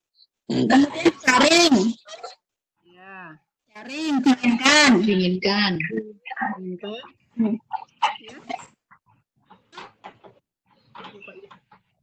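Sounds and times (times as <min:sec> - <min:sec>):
indistinct voice over video call: 0:00.0 - 0:08.8.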